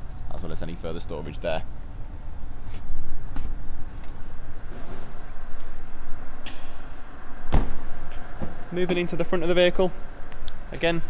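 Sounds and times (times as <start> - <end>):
car door shutting: 7.5 - 8.6.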